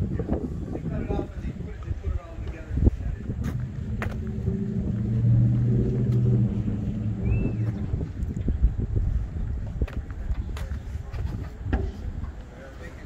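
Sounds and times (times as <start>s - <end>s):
vehicle engine humming: 1.4s - 13.0s.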